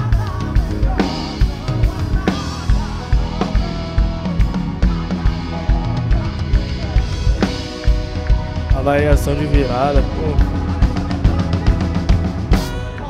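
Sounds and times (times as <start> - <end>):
live band music: 0.0 - 13.0.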